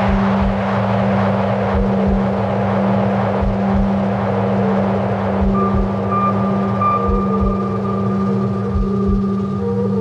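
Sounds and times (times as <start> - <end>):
low hum drone: 0.0 - 10.0.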